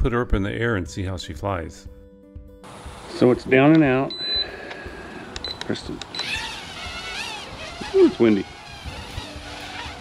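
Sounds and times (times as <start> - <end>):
drone motors and propellers whining: 6.0 - 10.0.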